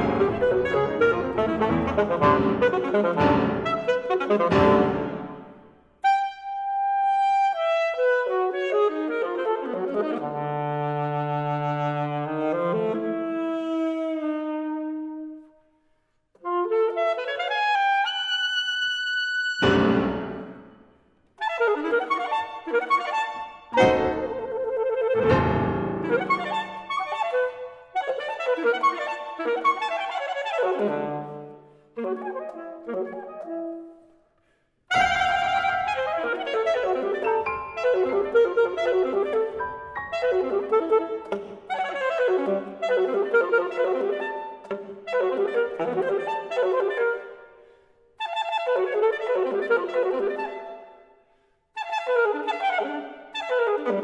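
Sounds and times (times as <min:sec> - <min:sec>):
saxophone notes: 0:00.0 - 0:15.4, 0:16.4 - 0:20.7, 0:21.4 - 0:34.1, 0:34.9 - 0:47.4.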